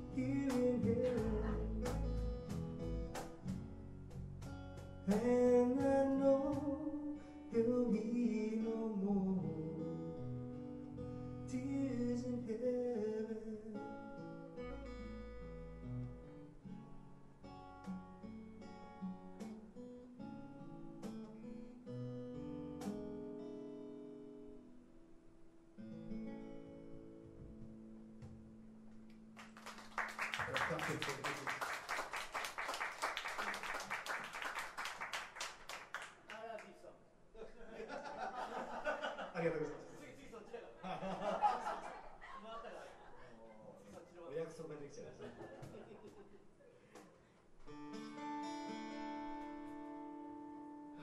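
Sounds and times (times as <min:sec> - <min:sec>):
man singing: 0:00.0 - 0:02.1, 0:05.1 - 0:10.0, 0:11.5 - 0:13.9
electric bass: 0:00.0 - 0:05.1
cajon drum: 0:00.0 - 0:06.9
strummed acoustic guitar: 0:00.0 - 0:24.8, 0:47.6 - 0:51.0.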